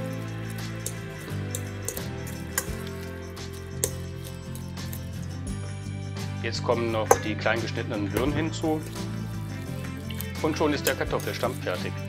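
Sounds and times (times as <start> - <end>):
fork clicking on metal bowl: 0.0 - 5.4, 7.1 - 7.3, 8.2 - 12.0
fork stirring mashed potatoes: 0.0 - 5.5, 8.2 - 12.0
background music sustained notes: 0.0 - 12.0.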